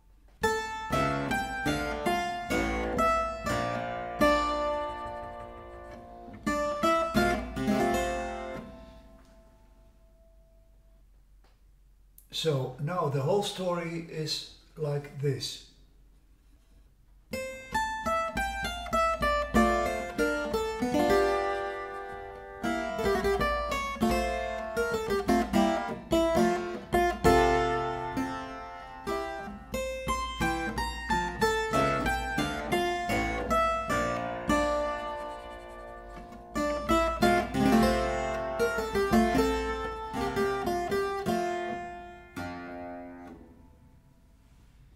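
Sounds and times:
clavichord playing: 18.6s - 41.8s.

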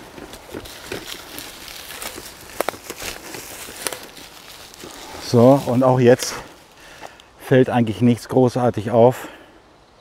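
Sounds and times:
twigs snapping: 0.0s - 7.3s
footsteps on dry leaves and twigs: 0.0s - 7.4s.

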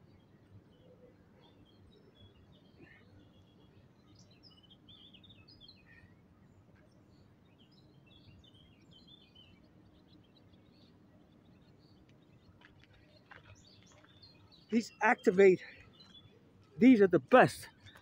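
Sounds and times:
faint songbirds chirping: 0.0s - 18.0s
low steady background noise: 0.0s - 18.0s.

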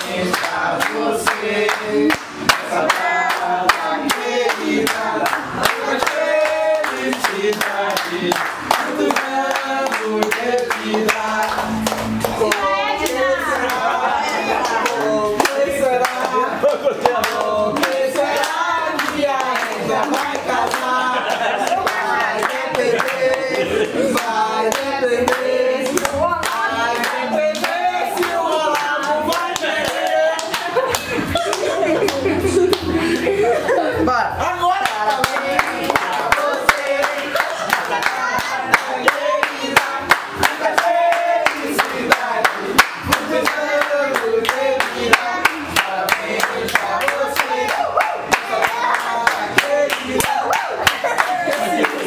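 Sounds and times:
hands clapping: 0.0s - 13.8s, 14.6s - 33.3s, 34.8s - 52.0s
women singing: 0.0s - 33.9s, 35.0s - 52.0s.

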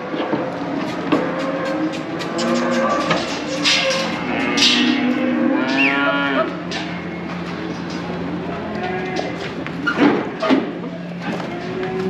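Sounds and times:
steady low hum: 0.0s - 12.0s
cow mooing: 0.6s - 7.0s, 8.3s - 9.5s, 11.3s - 12.0s.

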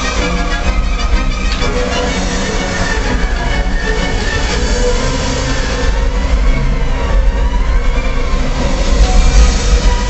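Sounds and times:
heavy low rumble: 0.0s - 10.0s.

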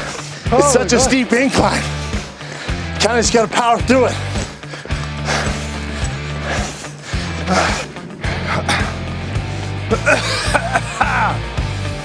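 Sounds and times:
man breathing hard: 0.0s - 0.5s, 1.8s - 3.0s, 4.2s - 10.4s
background music with beat: 0.0s - 12.0s.

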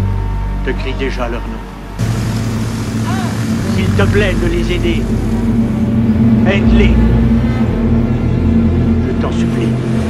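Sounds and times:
propeller plane engines droning: 0.0s - 10.0s
man speaking: 3.6s - 5.1s, 6.4s - 7.2s.

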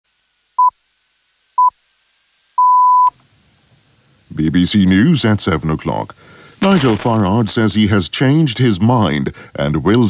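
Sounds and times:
time signal pips: 2.6s - 3.2s.

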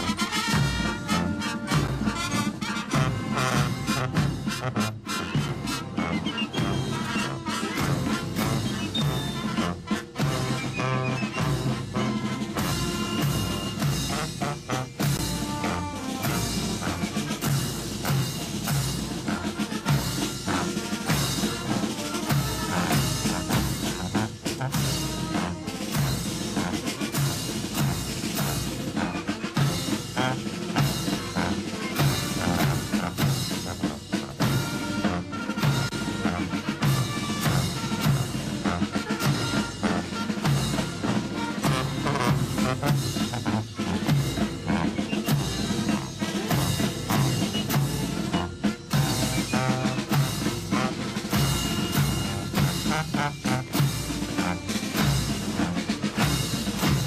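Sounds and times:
military band playing a march: 0.0s - 57.0s
snare and bass drums beating: 0.0s - 57.0s.

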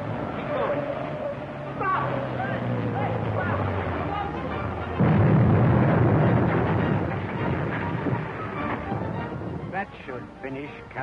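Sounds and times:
rocks tumbling rumble: 3.3s - 9.9s
rockslide crash: 4.8s - 9.8s.

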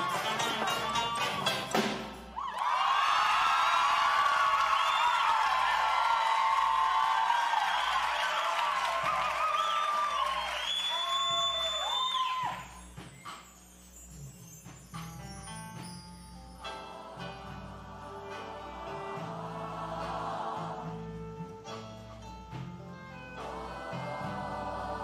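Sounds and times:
audience screaming and whooping: 2.3s - 12.8s
long high whistle: 9.4s - 13.8s.

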